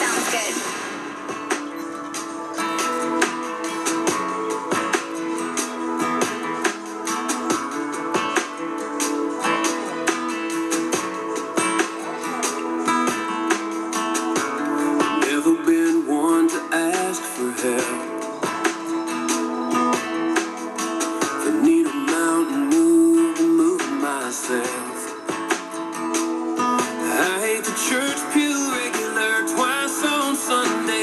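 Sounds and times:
country music with guitar on radio: 0:00.0 - 0:31.0.

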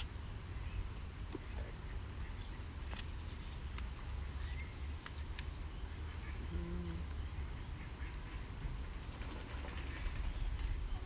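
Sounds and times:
faint bird calls: 0:04.0 - 0:11.0.

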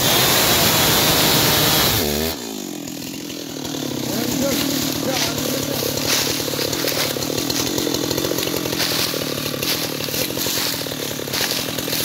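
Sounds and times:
chainsaw engine running: 0:00.0 - 0:12.0.

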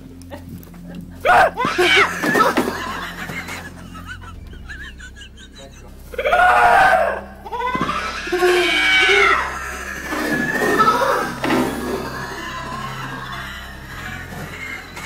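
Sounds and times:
music track: 0:00.0 - 0:15.0
woman screaming in fright: 0:01.3 - 0:03.4.

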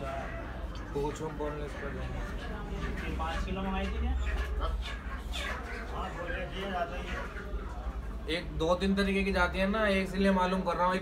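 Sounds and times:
people talking: 0:05.8 - 0:11.0.

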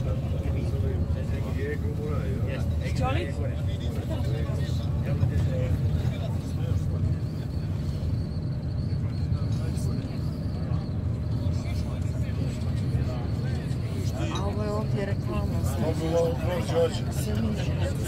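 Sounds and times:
faint high whine: 0:00.0 - 0:18.0
people's voices: 0:00.0 - 0:18.0
vehicle cabin rumble: 0:00.0 - 0:18.0.

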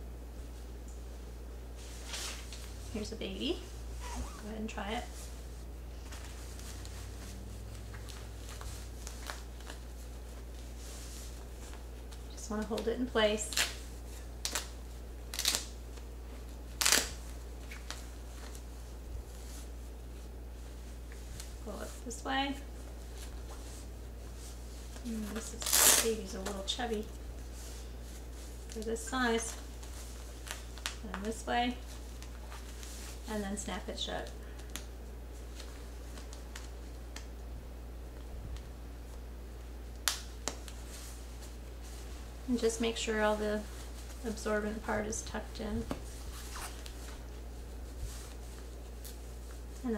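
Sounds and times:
low hum: 0:00.0 - 0:13.4
fabric and hook-tape rustling: 0:00.4 - 0:37.5, 0:38.1 - 0:49.9.

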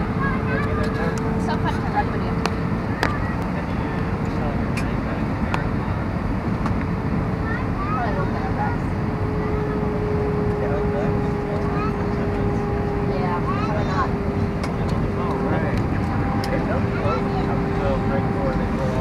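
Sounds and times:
aircraft engine and airflow roar: 0:00.0 - 0:19.0.

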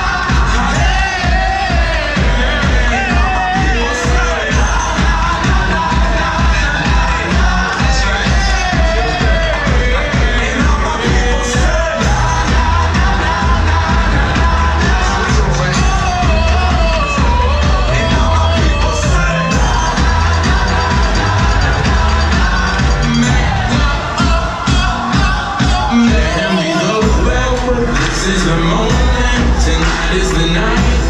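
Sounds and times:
heavy bass beat: 0:00.0 - 0:31.0
loud dance music: 0:00.0 - 0:31.0
person singing: 0:00.0 - 0:31.0.

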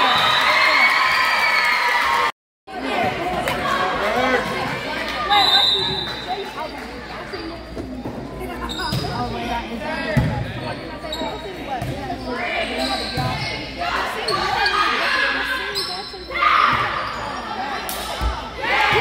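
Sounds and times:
crowd and player voices: 0:00.0 - 0:19.0
referee's whistle: 0:05.3 - 0:06.2.

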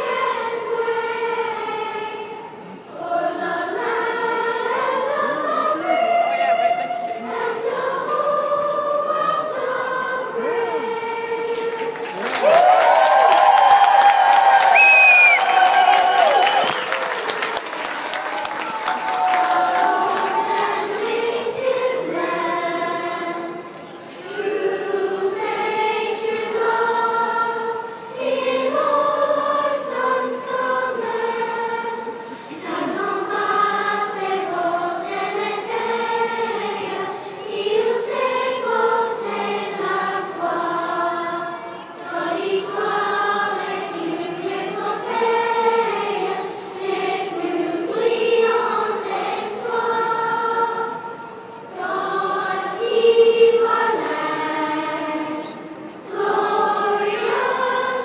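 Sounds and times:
choir singing unaccompanied: 0:00.0 - 0:58.0.

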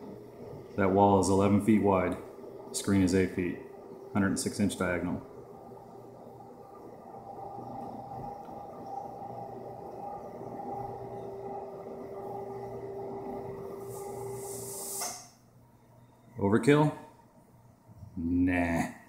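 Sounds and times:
projection screen motor humming: 0:00.0 - 0:18.4
short hiss: 0:13.8 - 0:15.4.

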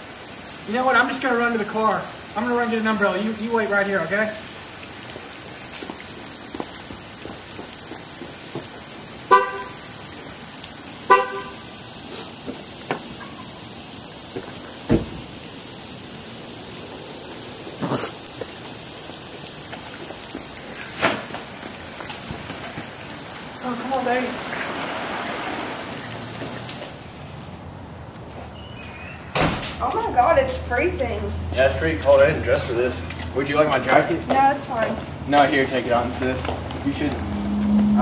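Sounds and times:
steady rain: 0:00.0 - 0:28.2, 0:29.8 - 0:38.0
car horn chirping: 0:09.3 - 0:09.9, 0:11.1 - 0:11.7
dull thump: 0:14.9 - 0:15.3.

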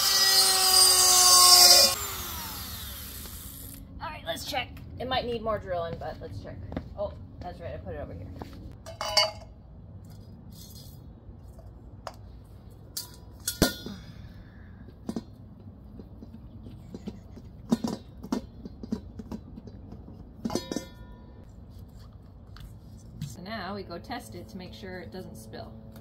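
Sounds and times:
low steady hum: 0:01.0 - 0:26.0
metal bowl ringing: 0:20.5 - 0:21.4.

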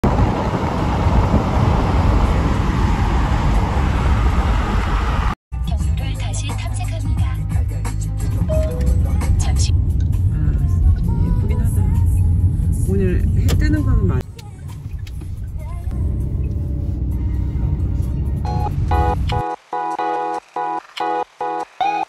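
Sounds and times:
car cabin rumble and hiss: 0:08.5 - 0:19.4.

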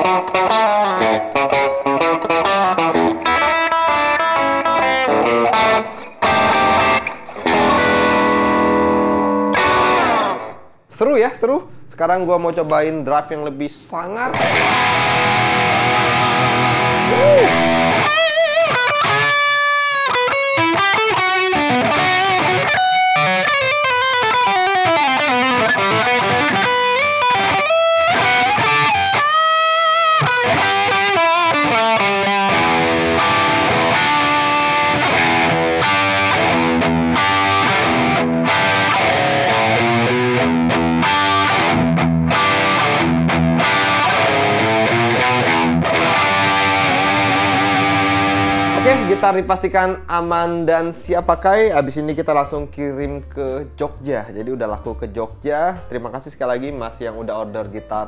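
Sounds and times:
overdriven electric guitar: 0:00.0 - 0:10.8, 0:14.3 - 0:49.4.

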